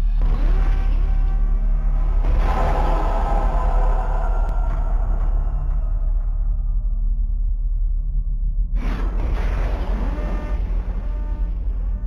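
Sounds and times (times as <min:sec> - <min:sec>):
deep low rumble: 0:00.0 - 0:12.0
rush of noise: 0:01.9 - 0:07.4.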